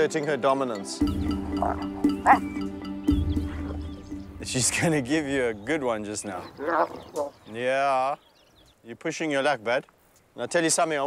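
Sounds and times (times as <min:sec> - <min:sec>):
background music: 0:00.0 - 0:06.6
hyenas calling: 0:01.1 - 0:04.2, 0:06.0 - 0:07.6.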